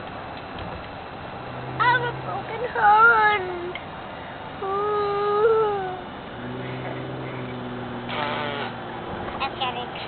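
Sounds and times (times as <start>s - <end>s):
car hum: 0.0s - 10.0s.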